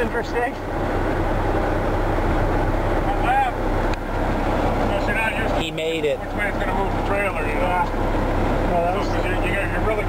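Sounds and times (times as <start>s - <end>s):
diesel truck engine droning: 0.0s - 10.0s.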